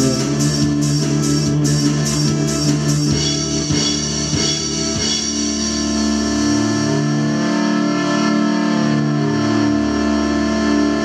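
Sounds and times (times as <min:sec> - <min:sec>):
keyboard and guitar chord ringing: 0:00.0 - 0:11.0
low bass note: 0:00.0 - 0:11.0.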